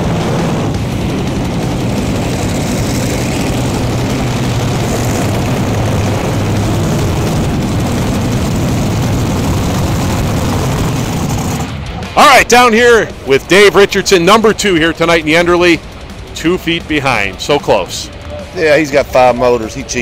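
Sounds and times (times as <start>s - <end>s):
tractor engine at full throttle: 0.0s - 20.0s.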